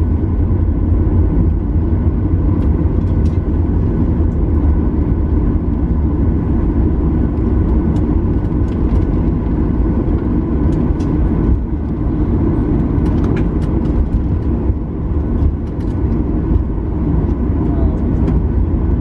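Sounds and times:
aircraft cabin engine rumble: 0:00.0 - 0:19.0.

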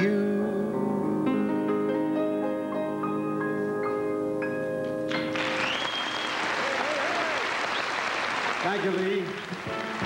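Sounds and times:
audience applause: 0:05.1 - 0:10.0
whistle from crowd: 0:05.6 - 0:06.4.

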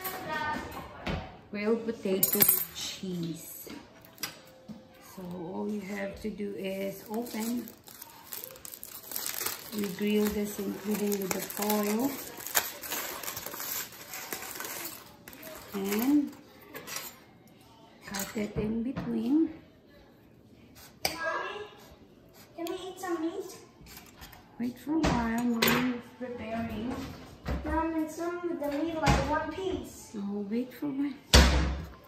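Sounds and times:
people talking: 0:05.0 - 0:07.8, 0:09.7 - 0:12.4, 0:15.4 - 0:16.4
aluminium foil crinkling: 0:05.2 - 0:17.2.

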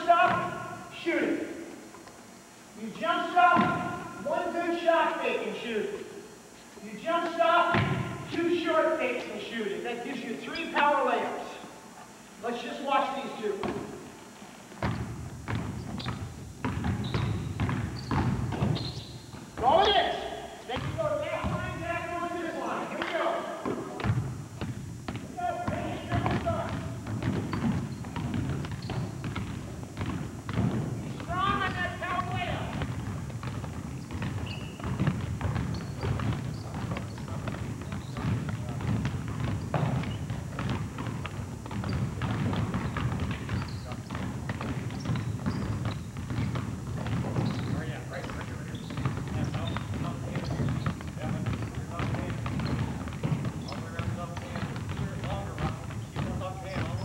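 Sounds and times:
basketballs bouncing on hardwood: 0:00.0 - 0:00.8, 0:03.0 - 0:04.6, 0:07.7 - 0:08.4, 0:13.5 - 0:14.0, 0:14.7 - 0:57.0.

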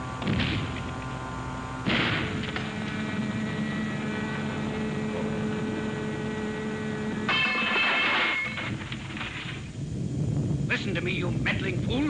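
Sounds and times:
electrical hum with sustained tones: 0:00.0 - 0:12.0
crash: 0:07.3 - 0:09.7.

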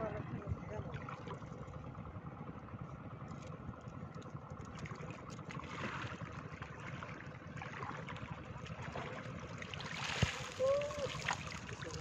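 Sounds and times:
steady low rumble: 0:00.0 - 0:12.0
water splashing and trickling: 0:04.1 - 0:12.0.

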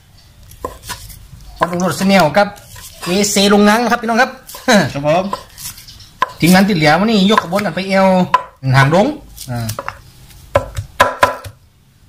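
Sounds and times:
cleaver chopping meat on wood: 0:01.6 - 0:02.3, 0:05.3 - 0:06.7, 0:07.3 - 0:08.6, 0:09.6 - 0:11.6.

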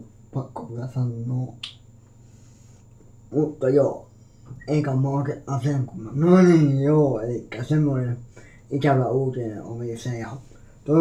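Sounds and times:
man speaking: 0:00.0 - 0:01.7, 0:03.3 - 0:11.0
sharp snap: 0:01.6 - 0:01.9.

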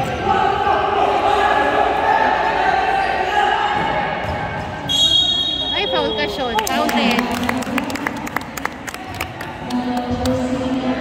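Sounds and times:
shrill whistle blast: 0:04.9 - 0:06.5.

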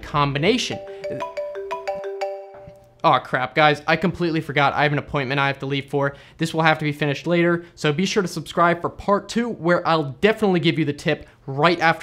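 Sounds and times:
phone ringtone: 0:00.6 - 0:02.9.

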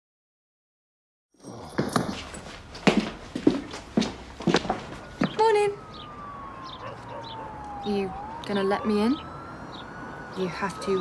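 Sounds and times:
footsteps on hard floor: 0:01.6 - 0:05.4.

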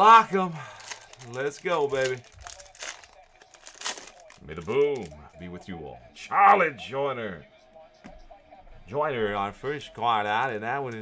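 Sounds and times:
foil wrapper crinkling: 0:00.1 - 0:05.2.

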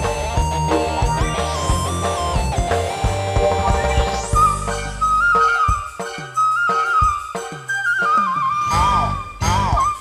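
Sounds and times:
high flute-like melody: 0:00.0 - 0:10.0.

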